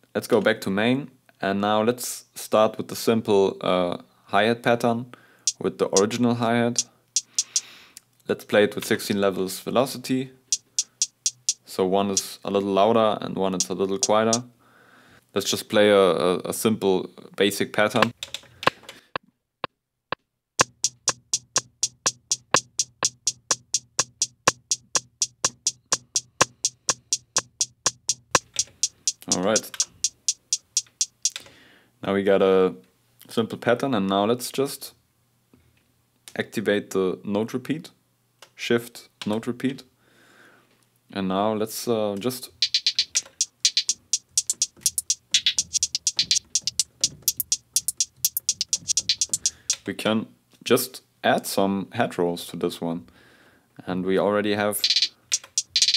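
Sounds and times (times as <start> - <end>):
hi-hat hits: 5.5 - 6.2, 7.2 - 7.6, 10.5 - 12.3, 13.6 - 14.4, 20.6 - 31.4, 42.6 - 49.8, 54.8 - 55.9.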